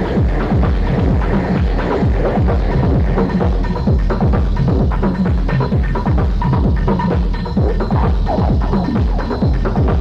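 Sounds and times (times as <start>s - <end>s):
deep bass: 0.0s - 10.0s
techno kick drum: 0.0s - 10.0s.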